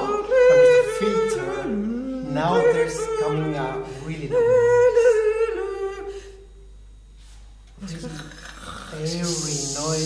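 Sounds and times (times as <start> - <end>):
person humming a long note: 0.0 - 6.5, 7.8 - 10.0
breathy vocal noise: 7.8 - 10.0.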